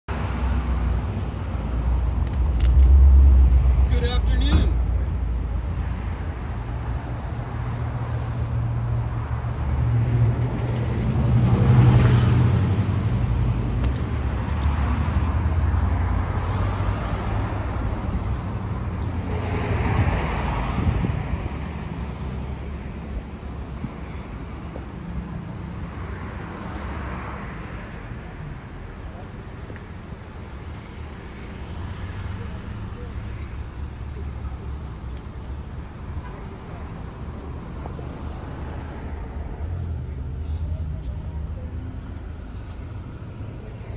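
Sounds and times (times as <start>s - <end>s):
traffic rumble: 0.1s - 43.9s.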